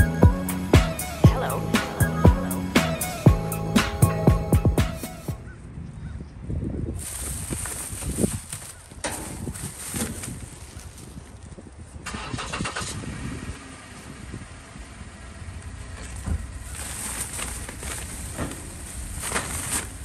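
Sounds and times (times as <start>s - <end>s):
plastic bags rustling: 7.0s - 11.7s, 16.1s - 20.0s.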